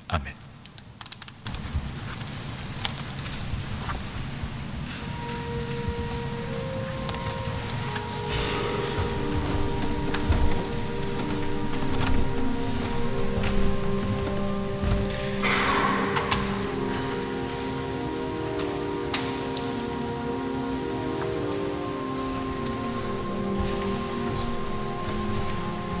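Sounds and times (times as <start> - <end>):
pipe organ chords: 4.5 - 26.0.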